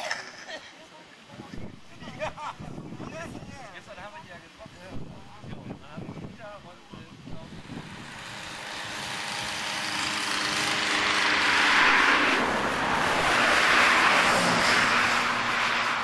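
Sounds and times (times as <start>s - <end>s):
motorised bicycles passing: 7.4s - 16.0s.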